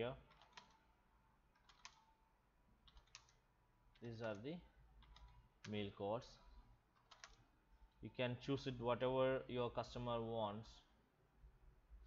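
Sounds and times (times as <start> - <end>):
keyboard keystrokes: 0.3 - 0.8, 1.6 - 2.0, 2.9 - 3.4, 4.0 - 4.4, 7.0 - 7.4.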